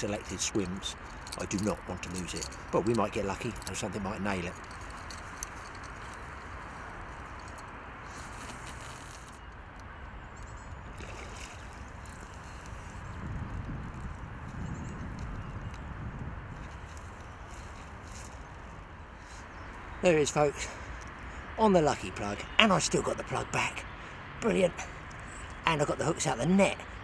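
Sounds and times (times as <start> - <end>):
wind: 0.0 - 27.0
water: 9.8 - 13.2.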